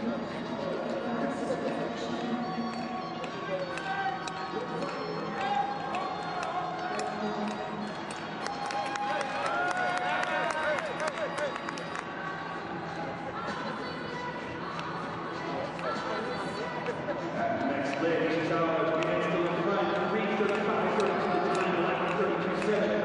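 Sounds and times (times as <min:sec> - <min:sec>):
crowd noise: 0:00.0 - 0:23.0
music: 0:00.0 - 0:23.0.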